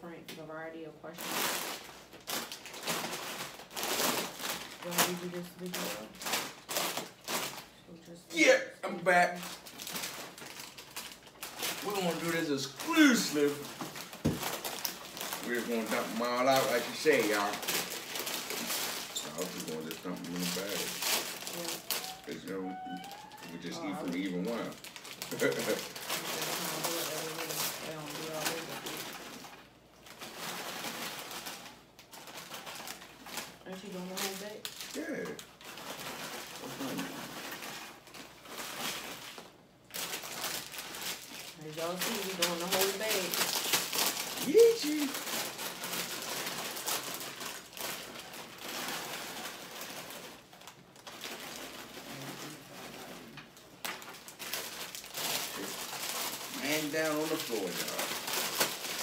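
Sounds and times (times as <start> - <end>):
foil bags crinkling: 0.5 - 59.0
chips pouring and clattering: 8.4 - 59.0.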